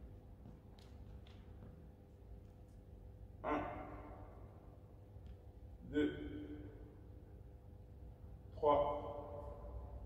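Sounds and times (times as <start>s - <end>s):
faint low room hum: 0.0s - 10.0s.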